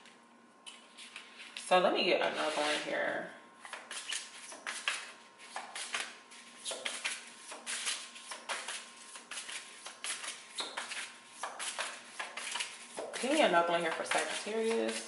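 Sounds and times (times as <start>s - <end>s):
cards being shuffled by hand: 3.6s - 15.0s.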